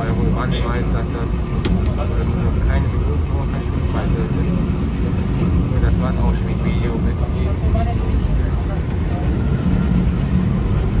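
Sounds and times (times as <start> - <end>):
vehicle rumbling in motion: 0.0 - 11.0.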